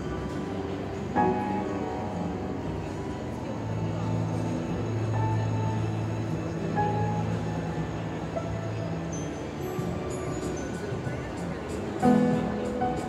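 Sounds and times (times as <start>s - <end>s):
upright piano playing: 0.0s - 13.0s.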